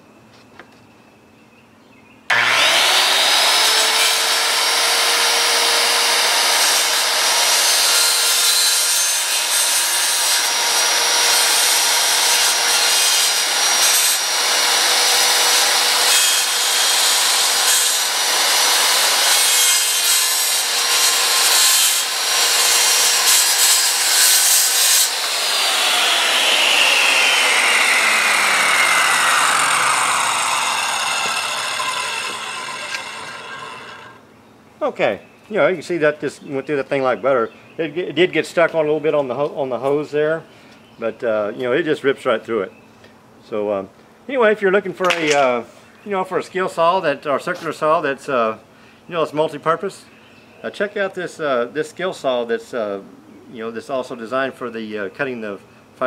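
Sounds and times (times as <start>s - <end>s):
circular saw cutting board: 2.3s - 34.2s.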